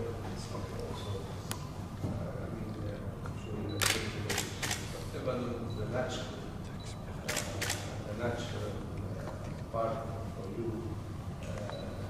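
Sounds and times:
low room hum: 0:00.0 - 0:12.0
camera shutters clicking: 0:03.8 - 0:04.9, 0:07.2 - 0:07.9.

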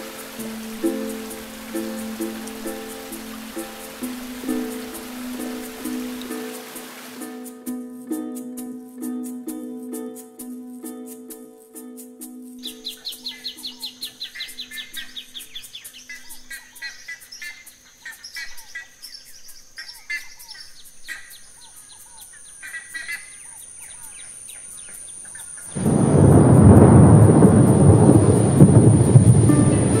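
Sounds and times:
birds chirping: 0:12.6 - 0:26.2
thunder rumble: 0:25.7 - 0:30.0.

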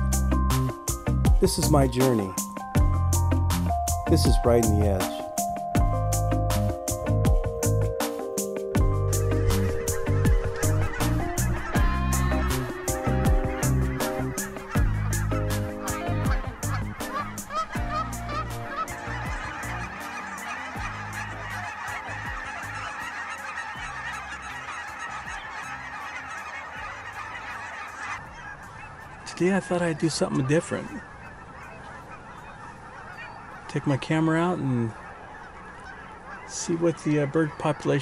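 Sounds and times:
beat-driven music: 0:00.0 - 0:28.2
geese honking: 0:00.0 - 0:38.0.

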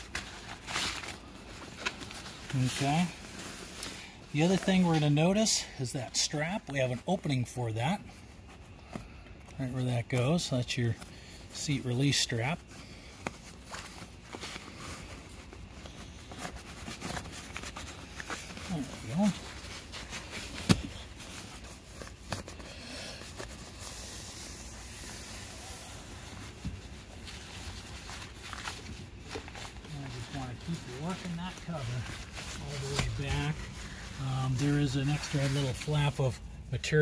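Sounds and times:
fabric rustling and rubbing: 0:00.0 - 0:37.0.

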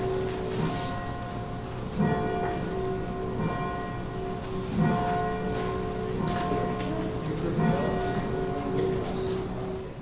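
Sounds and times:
church bells ringing: 0:00.0 - 0:10.0.

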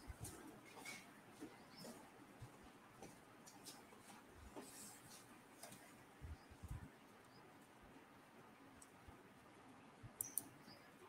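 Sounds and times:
faint high clicks: 0:10.2 - 0:10.6.

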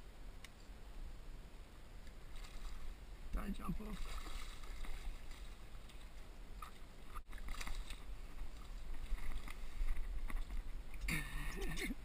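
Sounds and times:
fish splashing in water: 0:03.9 - 0:05.6, 0:06.6 - 0:09.8.

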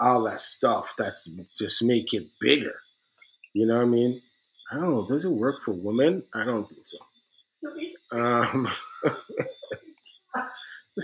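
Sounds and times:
man's stifled laughter: 0:08.2 - 0:09.9.

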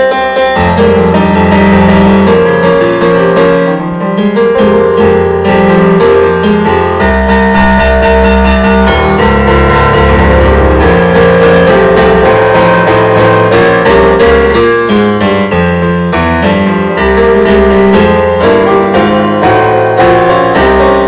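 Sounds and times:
digital piano improvisation: 0:00.0 - 0:21.0.

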